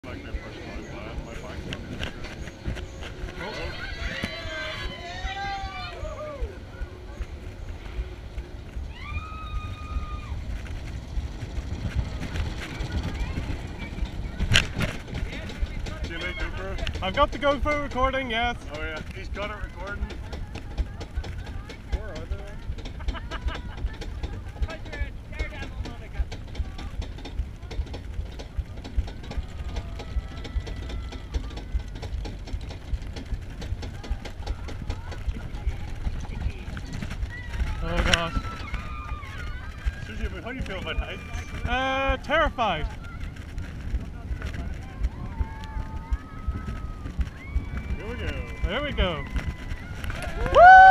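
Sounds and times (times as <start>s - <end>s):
roller coaster rumbling on track: 0.0s - 50.9s.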